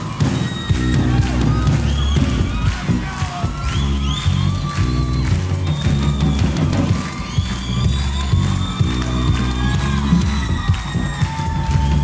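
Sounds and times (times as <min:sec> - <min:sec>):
bass guitar: 0:00.0 - 0:12.0
drum kit: 0:00.0 - 0:12.0.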